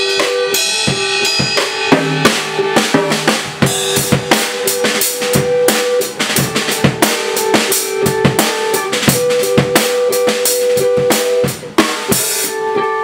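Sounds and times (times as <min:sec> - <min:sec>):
rock drum kit playing: 0:00.0 - 0:13.0.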